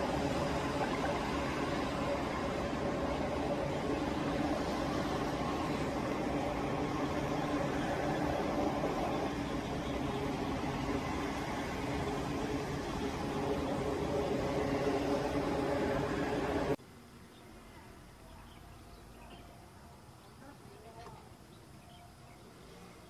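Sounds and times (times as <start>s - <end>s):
jet engine roar: 0.0s - 16.8s.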